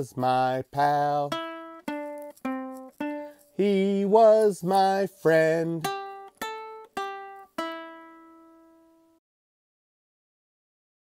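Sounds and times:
ukulele strumming chords: 0.0s - 9.2s.

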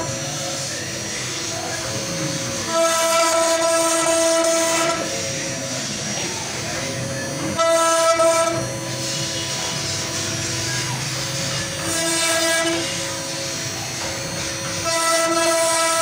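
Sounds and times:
router spindle whine: 0.0s - 16.0s.

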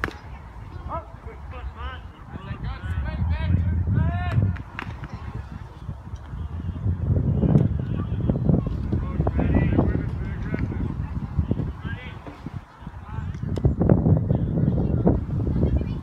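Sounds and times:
baseball smacking into mitt: 0.0s - 0.2s
low wind rumble: 0.0s - 16.0s.

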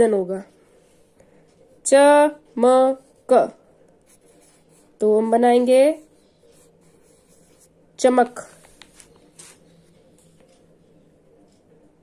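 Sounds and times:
pen scratching on paper: 4.0s - 9.7s.

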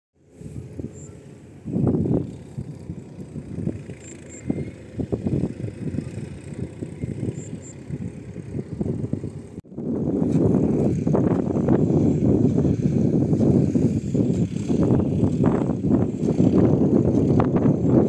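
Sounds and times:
wind buffeting microphone: 0.3s - 18.0s.

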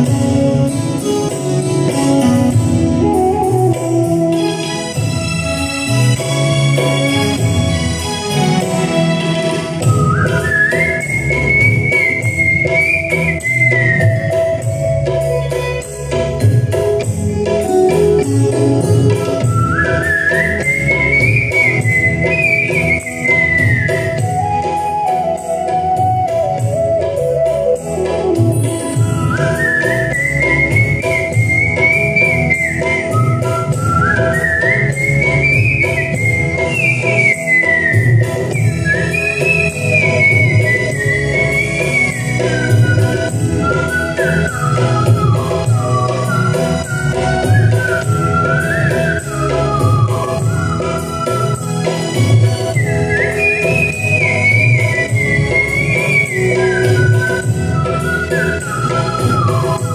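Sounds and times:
live band playing: 0.0s - 59.9s
man whistling a melody: 3.0s - 4.4s, 9.8s - 15.1s, 19.4s - 59.9s.

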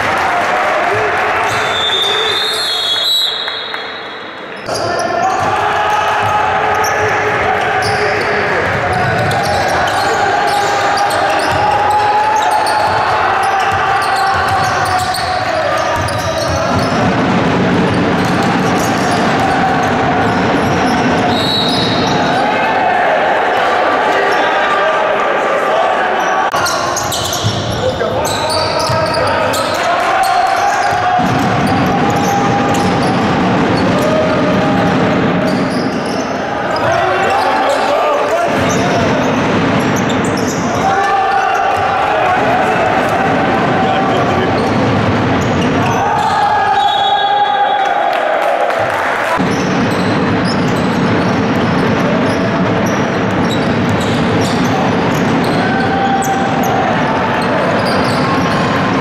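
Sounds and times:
voices: 18.2s - 50.9s.

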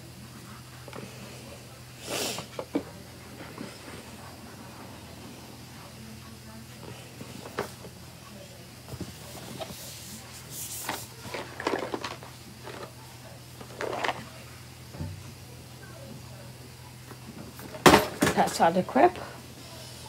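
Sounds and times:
murmuring voices: 0.0s - 17.7s, 18.5s - 20.0s
steady low hum: 0.0s - 20.0s
handling and rustling: 8.9s - 13.0s, 13.6s - 14.4s.

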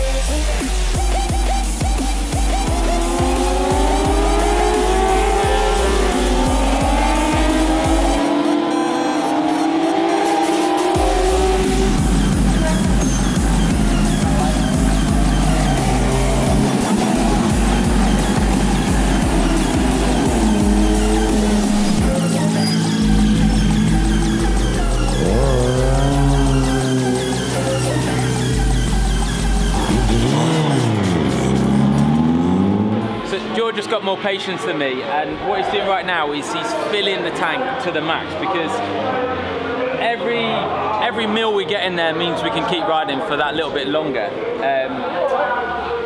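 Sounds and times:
racing motorcycle engines revving: 0.0s - 34.2s, 37.6s - 41.0s
electronic dance music: 0.0s - 43.2s.

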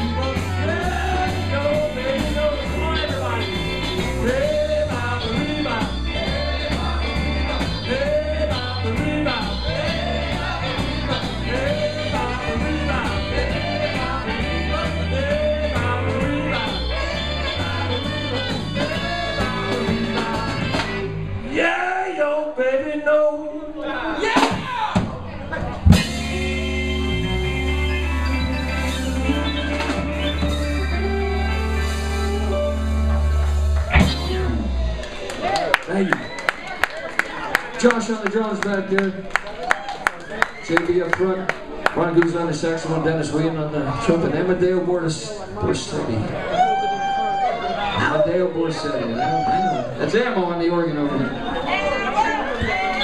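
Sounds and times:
drum kit: 0.0s - 21.4s, 24.2s - 36.3s
saxophone: 0.0s - 21.5s, 25.9s - 36.3s
trumpet: 0.0s - 21.6s, 25.9s - 35.2s
rock and roll band playing: 0.0s - 22.2s, 24.0s - 53.0s
bass line: 0.0s - 22.5s, 24.2s - 36.7s
electric guitar: 25.4s - 36.4s.

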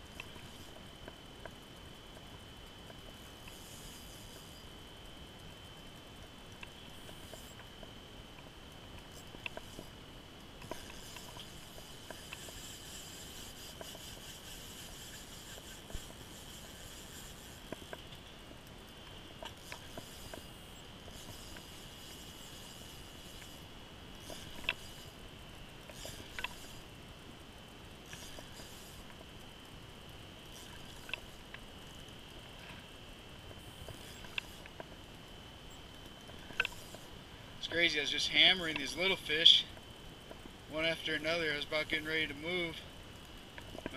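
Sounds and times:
high-pitched whine: 0.0s - 43.9s
light reel clicks: 0.1s - 27.0s, 27.8s - 43.9s
fishing reel winding: 3.1s - 4.8s, 10.6s - 18.3s, 19.4s - 26.9s, 28.0s - 29.3s, 30.5s - 31.6s, 33.6s - 34.8s, 36.3s - 39.8s.

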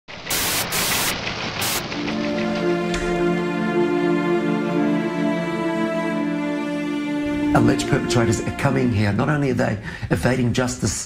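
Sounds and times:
static glitch hiss: 0.1s - 1.8s.

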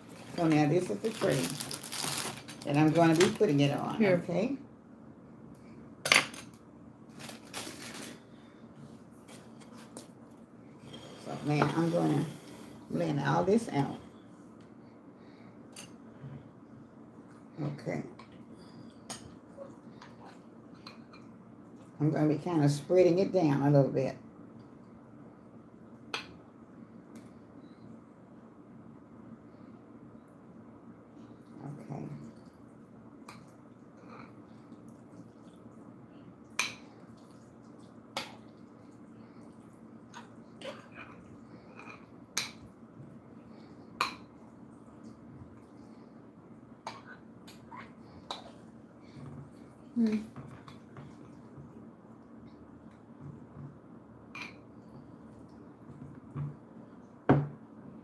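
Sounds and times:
steady low hum: 0.0s - 58.0s.

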